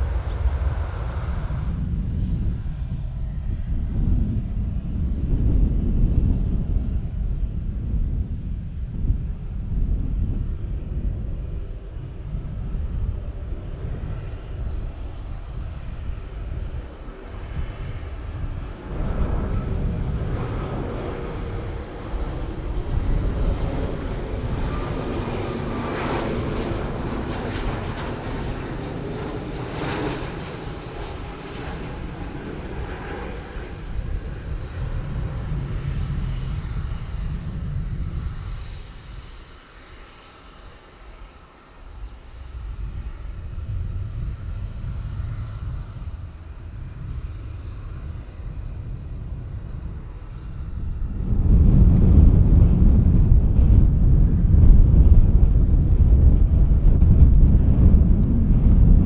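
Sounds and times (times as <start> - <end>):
jet engines rumbling and whining: 0.0 - 59.0.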